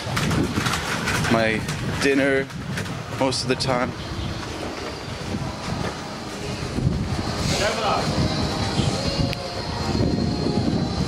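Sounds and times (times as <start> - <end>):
street noise: 0.0 - 11.0
wind buffeting microphone: 0.0 - 11.0.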